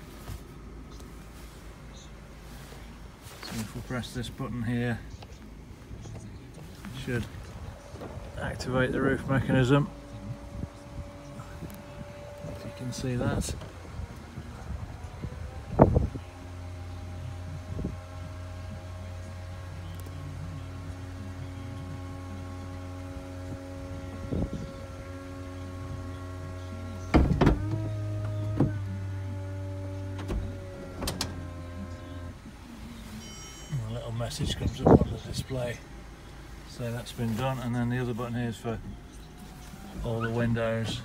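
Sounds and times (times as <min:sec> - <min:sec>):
electric motor hum: 0:05.6 - 0:41.0
roof mechanism clunk: 0:27.0 - 0:32.2.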